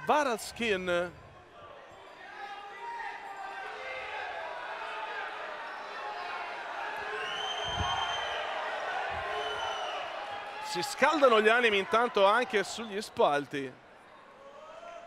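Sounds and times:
long high whistle: 7.1s - 8.4s.

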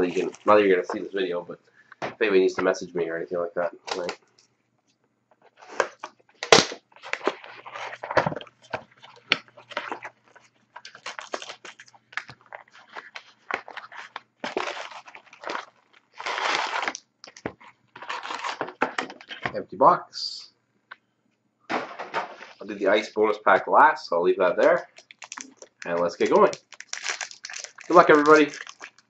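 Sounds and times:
shrink-wrap tearing and crinkling: 0.0s - 0.6s, 5.6s - 19.5s, 24.7s - 29.0s
card packs handled: 0.0s - 1.2s, 3.8s - 4.2s, 5.5s - 19.6s, 24.6s - 29.0s.

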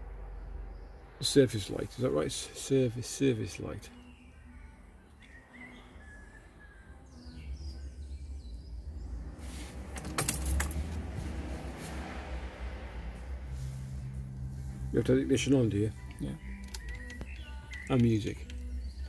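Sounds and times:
low steady rumble: 7.5s - 16.5s
jangling clatter: 9.9s - 11.0s.

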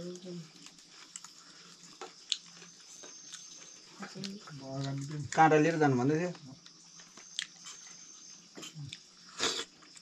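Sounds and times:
person chewing food: 0.5s - 5.4s, 6.6s - 10.0s.

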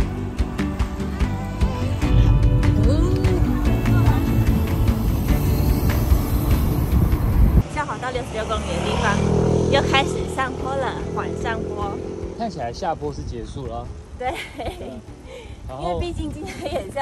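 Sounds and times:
music playing: 0.0s - 7.6s
car road rumble: 2.1s - 10.4s.

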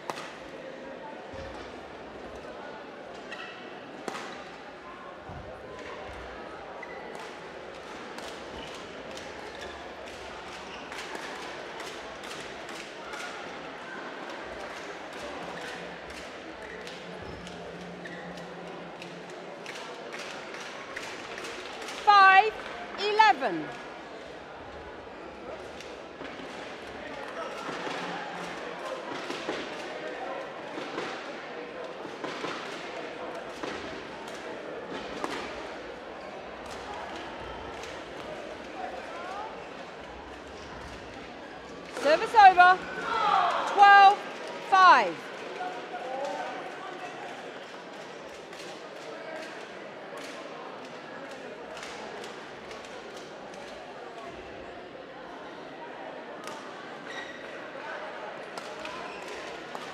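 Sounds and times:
chatter in a large hall: 0.0s - 59.9s.

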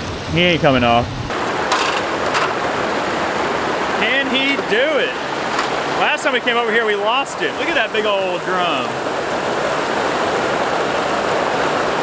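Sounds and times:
water rushing through spillway: 0.3s - 12.0s.

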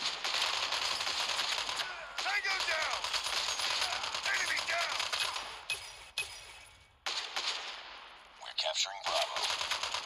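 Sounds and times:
rapid automatic gunfire: 0.0s - 5.7s, 7.0s - 8.1s, 9.1s - 10.0s.

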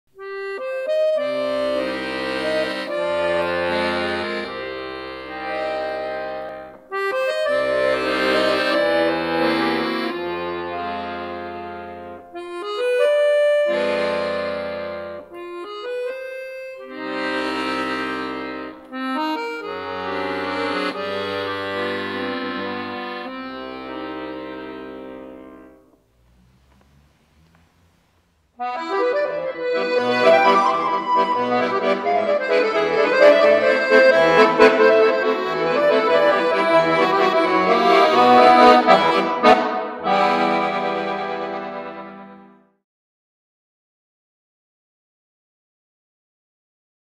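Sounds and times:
accordion playing chords: 0.1s - 42.8s.

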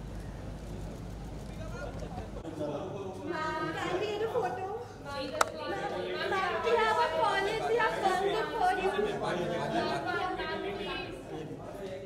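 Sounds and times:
overlapping crowd chatter: 0.0s - 12.0s.

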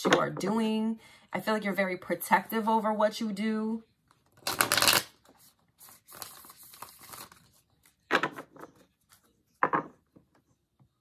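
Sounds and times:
cards being shuffled: 4.2s - 8.1s.

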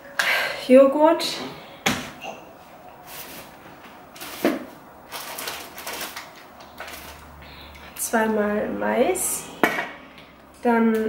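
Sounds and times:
rustling: 3.0s - 8.1s.

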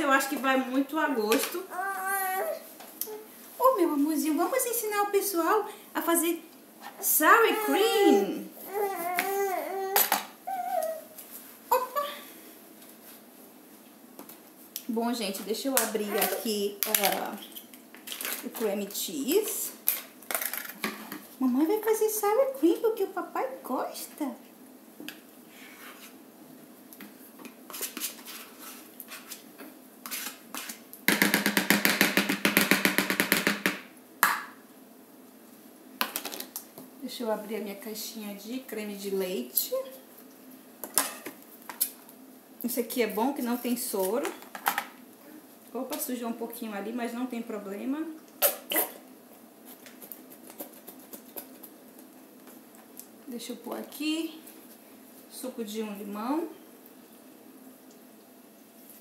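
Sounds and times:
metal spoon scraping plastic tub: 30.0s - 30.8s.

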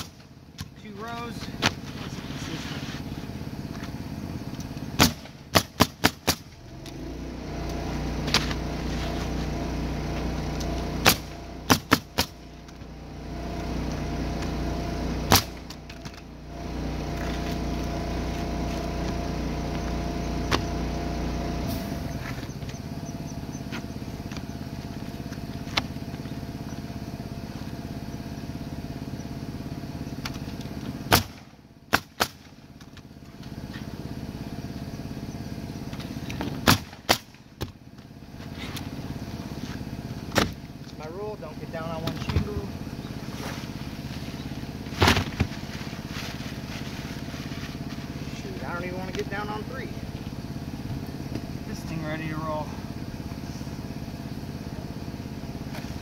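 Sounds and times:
steady mechanical hum: 0.0s - 56.0s
pneumatic nailer shots: 4.9s - 6.9s, 10.4s - 12.8s, 15.2s - 16.3s, 30.2s - 32.6s, 36.3s - 37.8s, 40.3s - 40.6s, 44.9s - 45.5s.

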